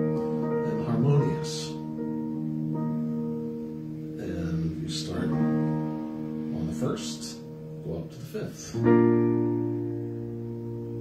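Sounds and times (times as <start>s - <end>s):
electronic keyboard chord: 0.0s - 11.0s
man's voice: 0.7s - 1.8s, 4.2s - 5.5s, 6.5s - 8.9s.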